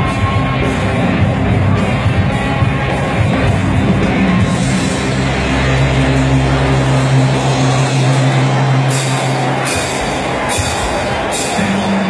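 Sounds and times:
live rock band: 0.0 - 12.0
distorted low note: 0.8 - 12.0.

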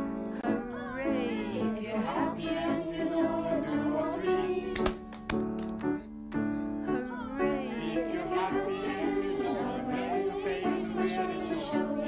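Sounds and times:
choir singing: 0.0 - 5.0, 7.2 - 12.0
sharp hand claps: 4.7 - 6.5.

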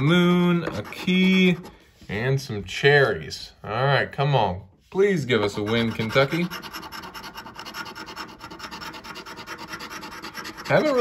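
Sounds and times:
coin scraping scratch-off ticket: 5.5 - 11.0.

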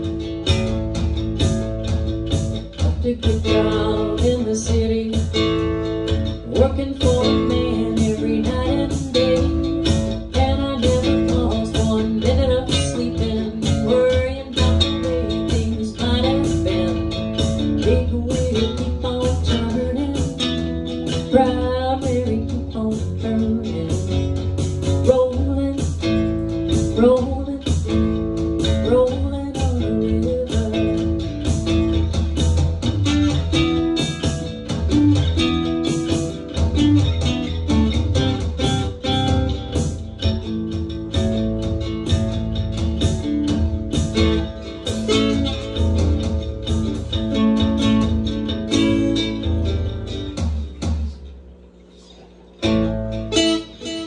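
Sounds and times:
steady drum beat: 0.0 - 51.5
low bass line: 0.0 - 51.8
bluesy electric guitar: 0.0 - 54.0.

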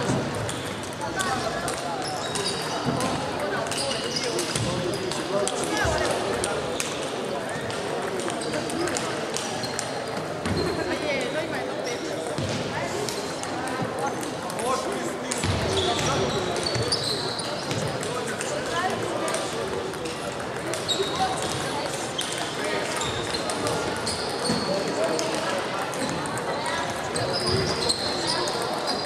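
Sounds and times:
table tennis balls clicking: 0.0 - 10.4, 17.7 - 29.0
players' voices: 0.0 - 29.0.

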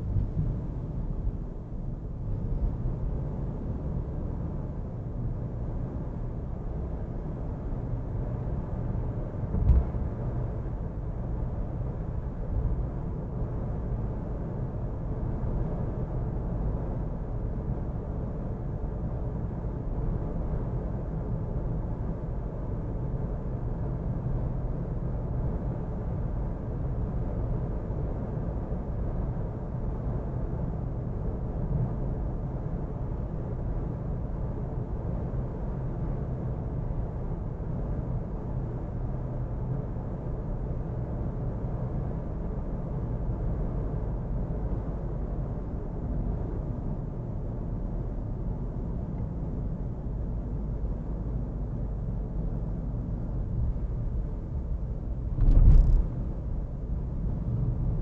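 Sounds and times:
tyre and road noise: 55.3 - 56.4.

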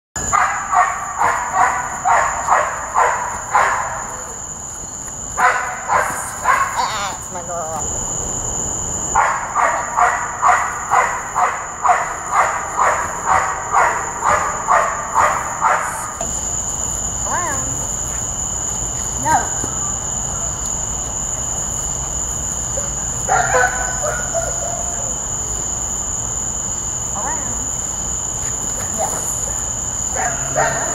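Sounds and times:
dog barking: 0.2 - 4.4, 5.4 - 7.0, 9.1 - 16.3, 22.6 - 25.2, 28.5 - 30.9
insects droning: 0.2 - 30.9.

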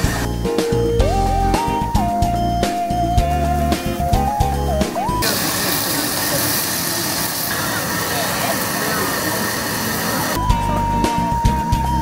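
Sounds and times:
background music: 0.0 - 5.6, 10.4 - 12.0
steady loud hiss: 5.2 - 10.4.

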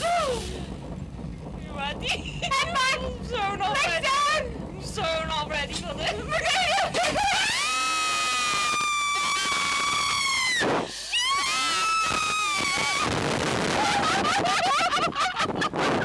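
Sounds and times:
wind rushing: 0.0 - 16.0
women screaming: 6.8 - 14.5.

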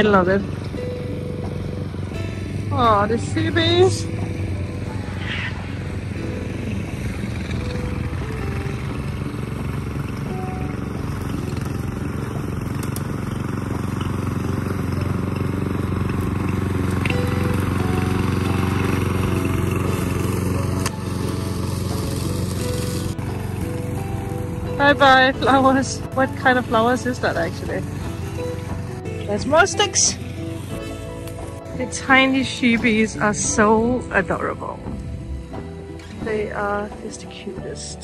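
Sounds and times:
lawn mower running: 0.0 - 38.0.

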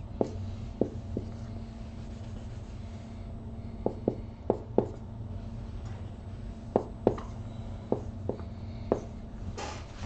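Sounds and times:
low steady hum: 0.0 - 10.0
marker tapping on whiteboard: 0.2 - 1.3, 3.9 - 5.0.

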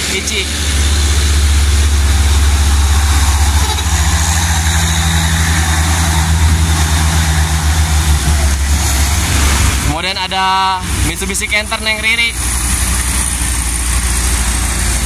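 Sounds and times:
higher hum: 0.0 - 15.0
truck diesel engine drone: 0.0 - 15.0.

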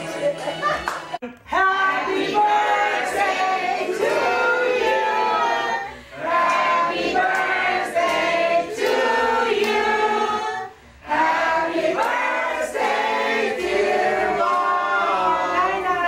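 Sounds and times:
group singing in chorus: 1.5 - 16.0.

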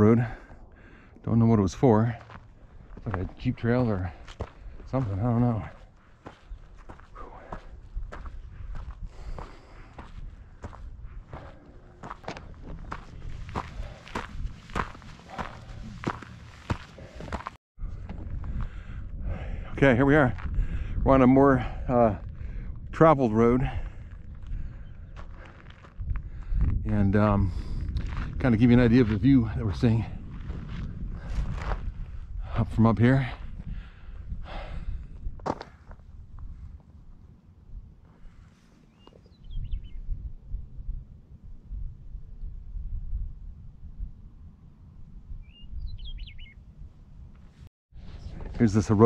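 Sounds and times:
wind rumbling on microphone: 0.0 - 49.0
footsteps on dirt track: 1.8 - 18.8, 23.6 - 33.6, 34.5 - 36.9.

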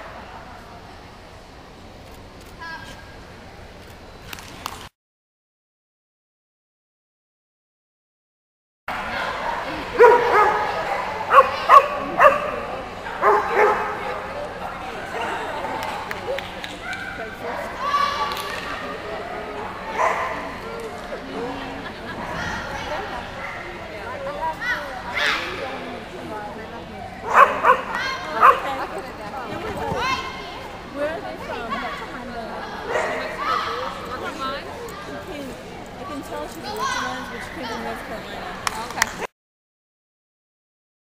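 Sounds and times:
steady hall hum: 0.0 - 4.9, 8.9 - 39.3
dog barking: 10.0 - 14.0, 19.9 - 20.4, 27.2 - 28.6.

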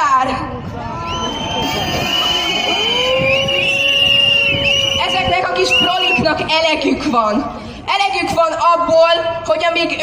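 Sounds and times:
crowd noise: 0.0 - 10.0
whistles blowing: 1.1 - 6.3.

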